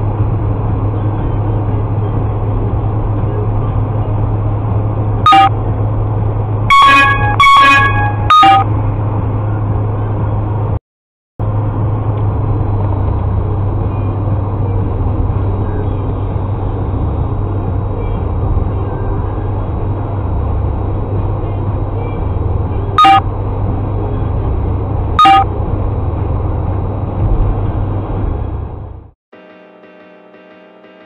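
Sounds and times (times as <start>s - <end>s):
car road and engine rumble: 0.0s - 10.8s, 11.4s - 31.0s
short loud beeps: 5.3s - 5.5s, 6.7s - 8.7s, 23.0s - 23.2s, 25.2s - 25.5s.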